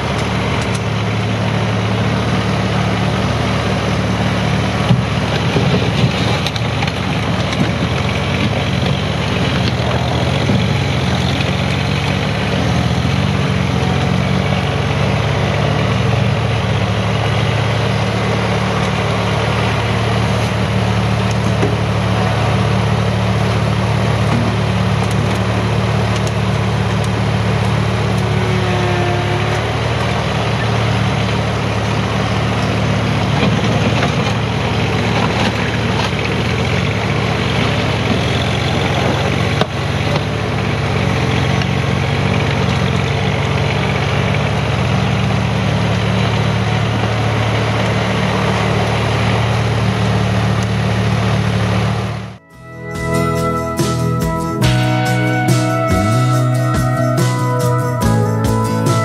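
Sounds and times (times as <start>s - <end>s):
loader scooping and dumping dirt: 0.0s - 59.0s
tractor diesel engine running: 0.0s - 59.0s.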